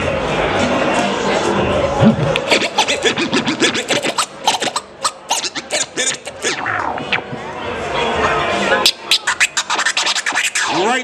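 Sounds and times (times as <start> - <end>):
turntable scratching: 2.0 - 7.5, 8.8 - 11.0.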